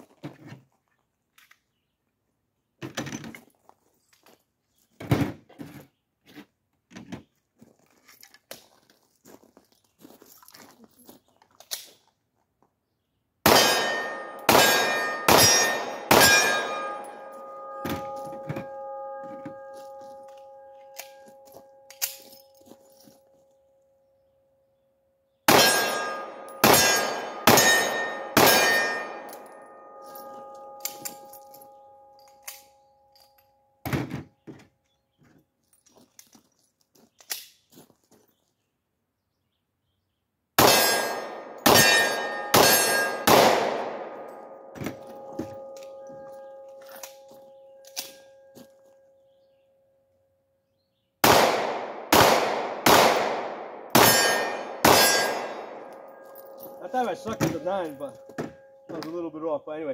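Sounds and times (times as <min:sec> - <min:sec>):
pistol shots: 0:13.4 - 0:19.7, 0:25.5 - 0:29.5, 0:40.6 - 0:44.5, 0:51.2 - 0:56.3
steel target ringing: 0:13.5 - 0:22.4, 0:25.5 - 0:32.8, 0:40.6 - 0:48.5, 0:53.8 - 0:59.0.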